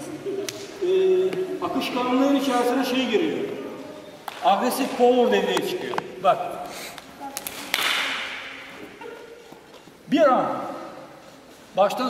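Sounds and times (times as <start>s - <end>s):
hand slapping arm: 6.9s - 8.5s.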